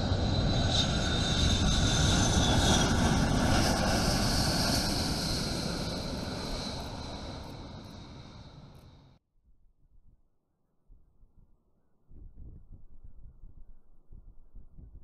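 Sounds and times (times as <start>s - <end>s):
jet engines at takeoff power: 0.0s - 9.2s.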